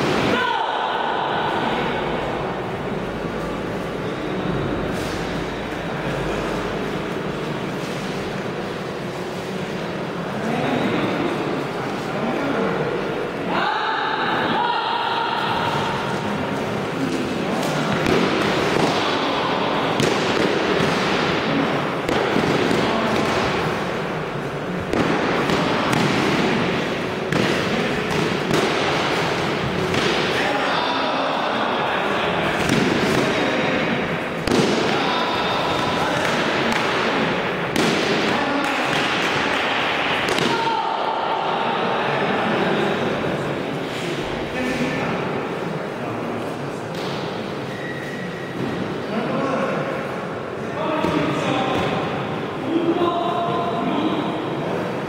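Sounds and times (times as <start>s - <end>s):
voices: 0.0s - 55.0s.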